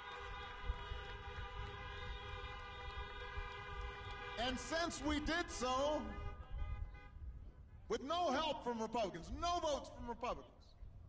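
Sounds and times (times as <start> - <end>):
car horns honking: 0.0 - 7.2
wind rumbling on microphone: 0.1 - 7.9.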